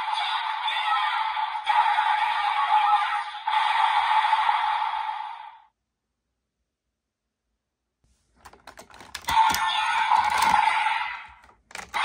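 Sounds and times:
tinny toy speaker sound effects: 0:09.0 - 0:12.0.

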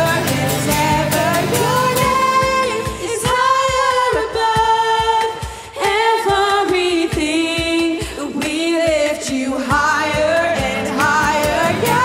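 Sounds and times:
women singing in harmony: 0:00.0 - 0:12.0.

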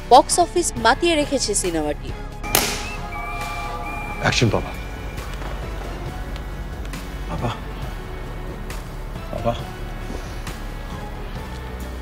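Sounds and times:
high held tones: 0:02.4 - 0:06.7
sharp hit: 0:02.5 - 0:03.1.

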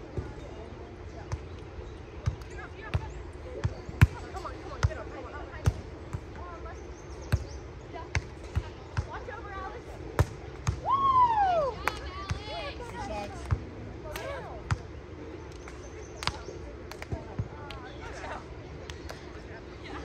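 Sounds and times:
faint voices: 0:00.0 - 0:20.0
volleyball slaps: 0:10.2 - 0:10.9, 0:15.6 - 0:17.8.

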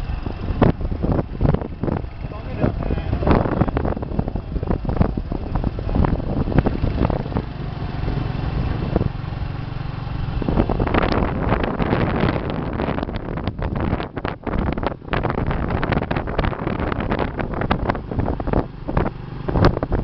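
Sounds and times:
vehicle engine rumbling: 0:00.0 - 0:20.0
wind buffeting microphone: 0:00.0 - 0:20.0.

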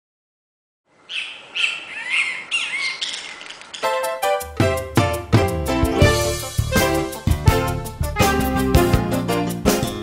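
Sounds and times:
birds chirping: 0:01.0 - 0:04.2
music: 0:03.8 - 0:10.0.

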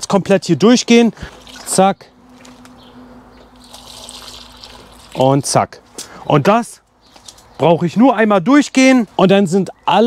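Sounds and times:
water trickling onto soil: 0:01.1 - 0:02.8, 0:03.4 - 0:06.1.

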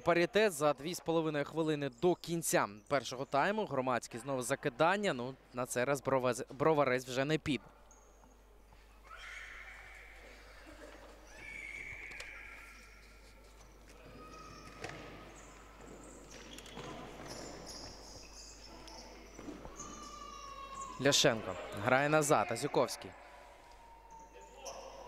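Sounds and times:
shoe squeaks on wooden floor: 0:11.2 - 0:21.0.

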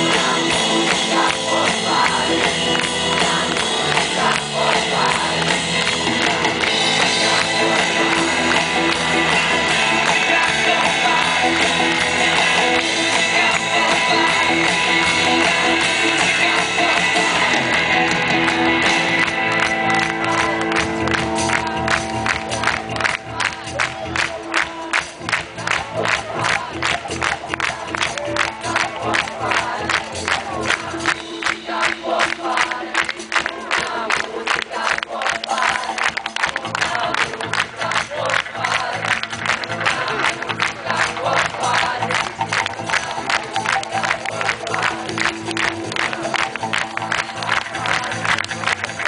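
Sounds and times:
live pop-rock band playing: 0:00.0 - 0:32.6
crowd singing and shouting: 0:00.0 - 0:49.0.

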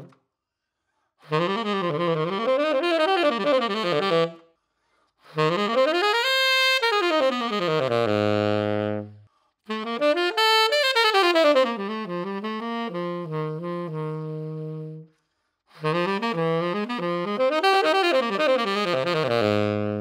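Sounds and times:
saxophonist breathing: 0:00.3 - 0:01.3, 0:04.4 - 0:05.4, 0:09.1 - 0:09.7, 0:15.1 - 0:15.8
solo tenor saxophone jazz runs: 0:01.2 - 0:04.5, 0:05.3 - 0:15.1, 0:15.7 - 0:20.0.

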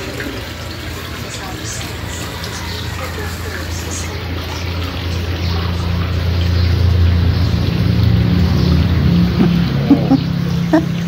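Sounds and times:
low droning rumble: 0:01.8 - 0:11.0.

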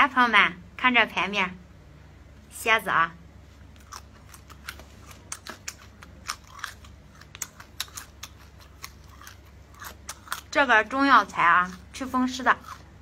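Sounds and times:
person chewing crunchy food: 0:03.5 - 0:13.0.

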